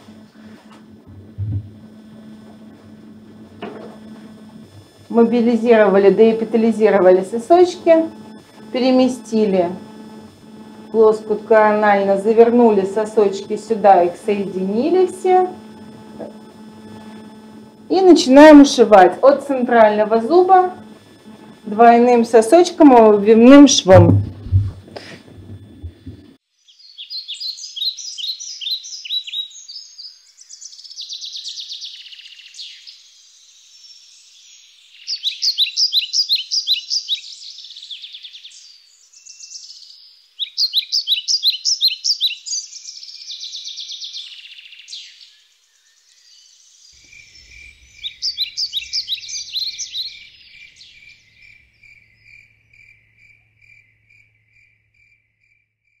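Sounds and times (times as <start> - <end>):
birds trilling: 0.0 - 24.4, 26.7 - 33.1, 33.8 - 54.7
cricket chirping: 0.0 - 56.0.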